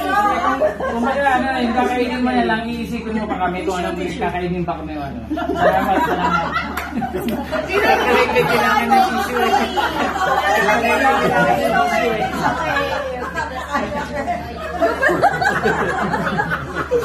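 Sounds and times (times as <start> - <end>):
indistinct chatter: 0.0 - 4.6, 5.3 - 17.0.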